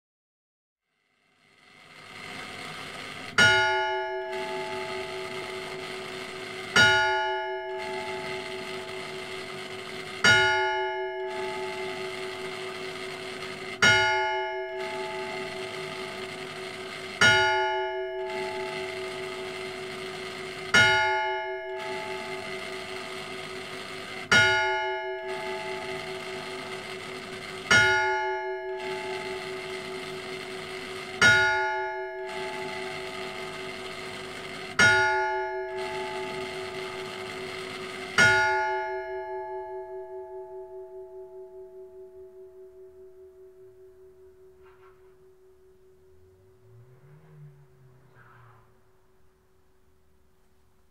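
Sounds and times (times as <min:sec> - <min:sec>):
church bell clanging: 0:02.1 - 0:46.8.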